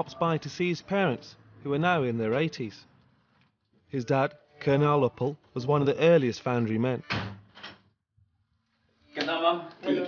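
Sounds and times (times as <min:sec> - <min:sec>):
door shutting: 0:07.0 - 0:07.9.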